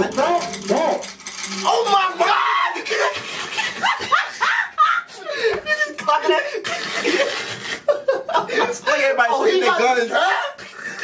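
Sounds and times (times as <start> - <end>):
excited voices with high cries: 1.6 - 5.2
people laughing: 2.8 - 11.0.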